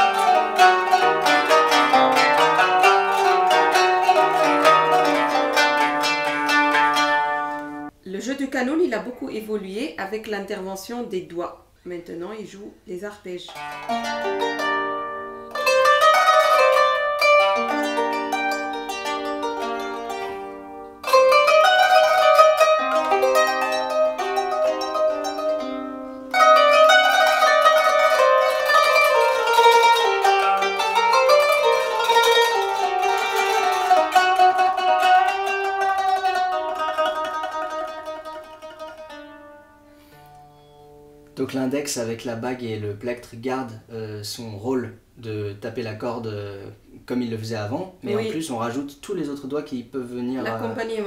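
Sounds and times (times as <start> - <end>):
plucked zither arpeggios: 0.0 - 7.9, 13.5 - 41.5, 48.0 - 48.8, 50.2 - 51.0.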